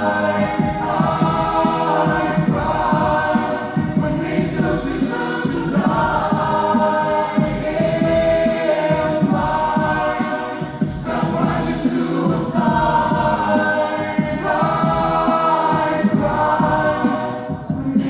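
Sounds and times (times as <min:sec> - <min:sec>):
mixed choir singing a cappella: 0:00.0 - 0:18.0
rhythmic low pulse: 0:00.0 - 0:18.0.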